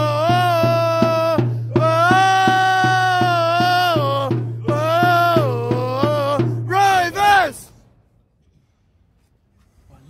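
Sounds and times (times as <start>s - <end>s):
drum beating: 0.0s - 7.6s.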